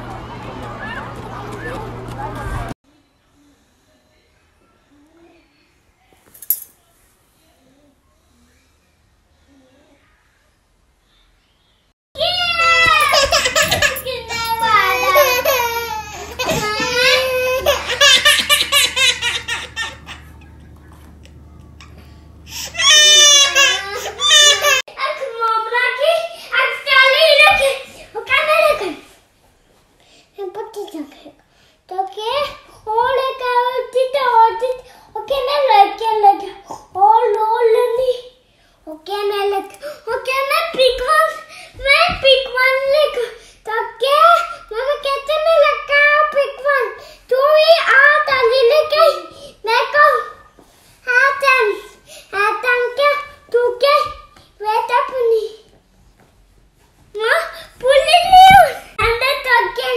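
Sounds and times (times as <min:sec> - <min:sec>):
toddler crying: 0:12.3 - 0:20.4, 0:22.5 - 0:24.9.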